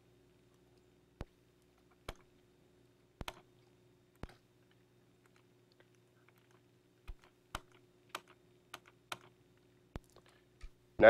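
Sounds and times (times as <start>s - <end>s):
faint electrical hum: 0.0s - 11.0s
laptop key clicks: 3.2s - 3.5s, 7.1s - 9.3s.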